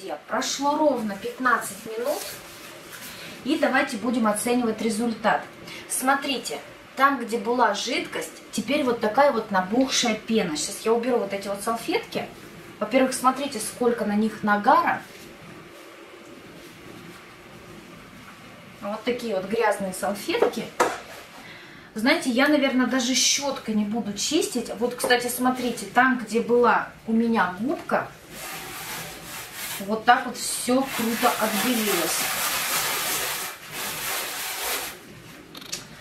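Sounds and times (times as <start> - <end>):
sponge scrubbing metal tray: 28.3 - 35.0
wet paper towels crumpled: 28.3 - 35.0.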